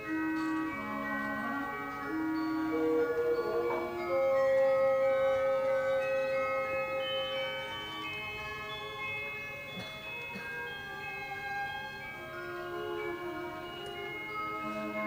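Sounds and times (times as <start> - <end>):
slow orchestral music: 0.0 - 15.0.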